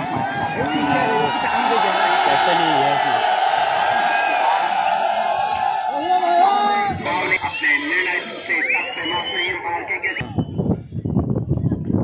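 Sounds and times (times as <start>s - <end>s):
crowd shouting and cheering: 0.0s - 10.8s.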